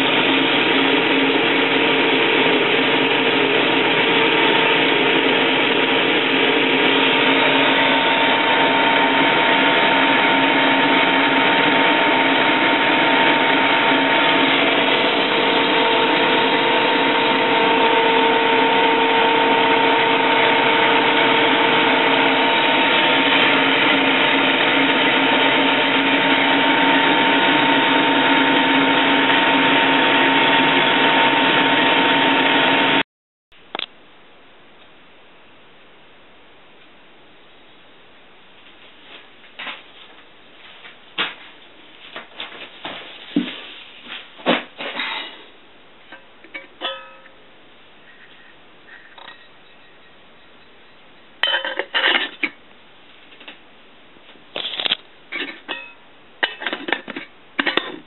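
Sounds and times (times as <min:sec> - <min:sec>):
electric motor running with whine: 0:00.0 - 0:33.0.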